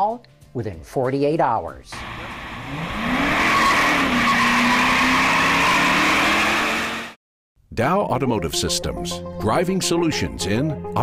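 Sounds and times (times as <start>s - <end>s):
car engine at high revs: 2.0s - 7.2s
tyre squeal: 3.0s - 6.9s.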